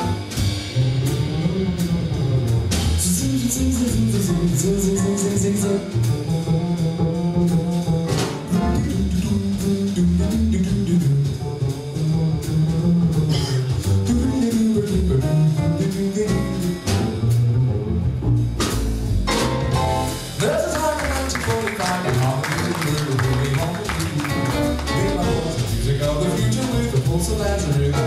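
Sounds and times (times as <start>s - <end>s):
jazz trio playing: 0.0s - 28.0s
upright bass line: 0.0s - 28.0s.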